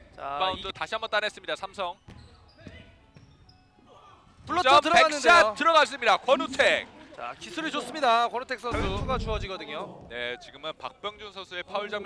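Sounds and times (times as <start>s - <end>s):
shoe squeaks: 0.6s - 3.9s.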